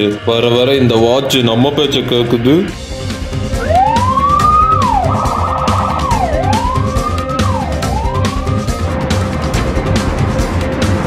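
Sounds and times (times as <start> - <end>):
background music with steady beat: 0.0 - 11.0
police siren wailing: 3.5 - 9.3.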